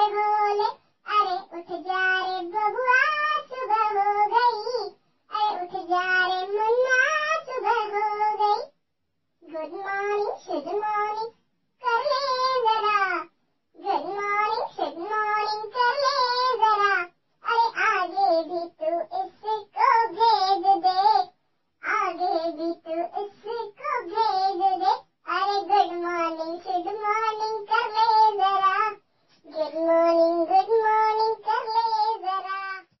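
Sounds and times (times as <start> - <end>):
child-like voice singing: 0.0 - 8.7, 9.4 - 32.9.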